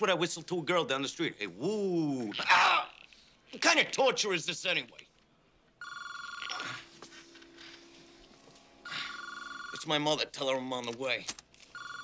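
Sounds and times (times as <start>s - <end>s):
telephone ringing: 5.8s - 6.9s, 8.8s - 10.2s, 11.6s - 12.0s.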